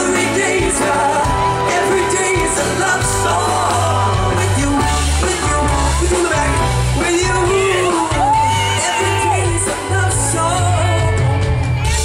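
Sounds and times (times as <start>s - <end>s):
live pop-rock band playing: 0.0s - 12.0s
man singing: 0.0s - 12.0s.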